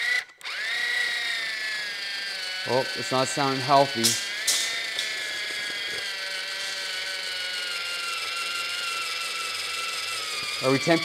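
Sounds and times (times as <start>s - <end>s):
small motor whining: 0.0s - 11.0s.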